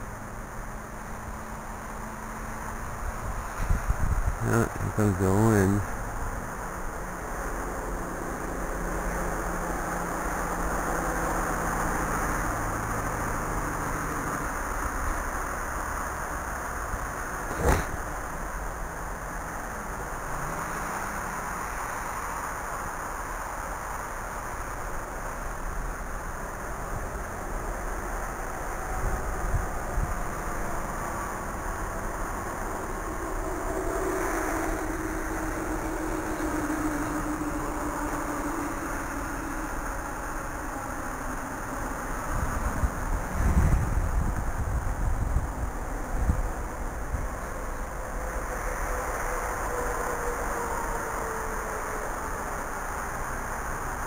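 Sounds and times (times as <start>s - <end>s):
steady hiss: 0.0s - 54.0s
wind buffeting microphone: 3.0s - 5.0s, 42.1s - 48.3s
distant quadcopter motors whining: 26.5s - 54.0s.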